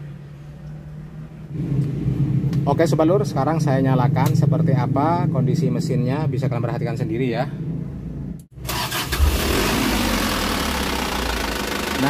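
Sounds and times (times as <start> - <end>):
diesel engine starting and idling: 8.5 - 12.0.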